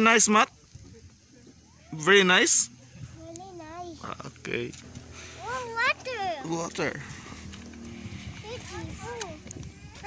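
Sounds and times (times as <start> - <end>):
voices murmuring: 0.0 - 10.0.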